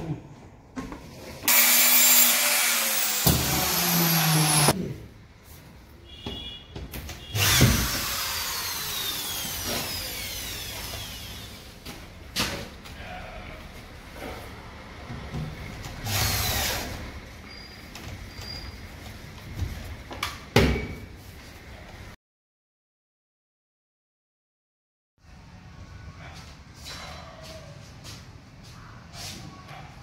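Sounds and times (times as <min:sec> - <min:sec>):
electric drill whining: 0:01.5 - 0:04.8, 0:07.4 - 0:11.6, 0:16.0 - 0:17.0.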